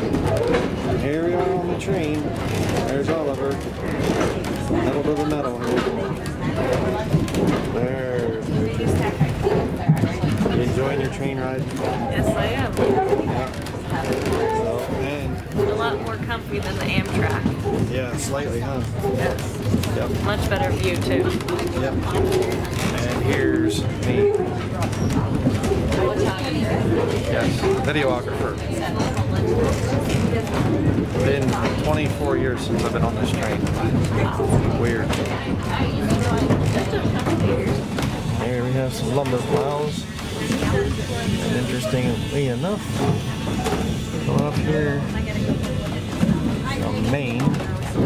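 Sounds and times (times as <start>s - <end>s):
people talking: 0.0s - 48.0s
man talking: 14.7s - 15.4s, 17.9s - 19.1s, 22.9s - 24.6s, 38.4s - 40.1s, 41.4s - 42.9s, 44.3s - 45.1s.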